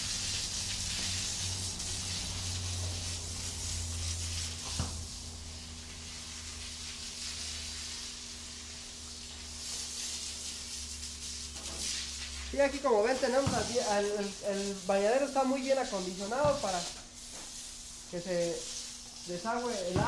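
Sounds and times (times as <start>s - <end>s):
water spraying from hose: 0.0s - 20.0s.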